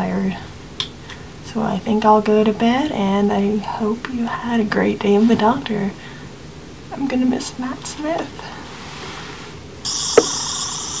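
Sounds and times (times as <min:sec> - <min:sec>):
high-pitched electronic whir: 0:09.9 - 0:11.0.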